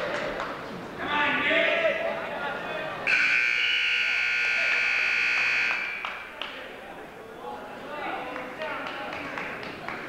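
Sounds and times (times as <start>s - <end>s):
timer buzzer: 3.1s - 6.0s.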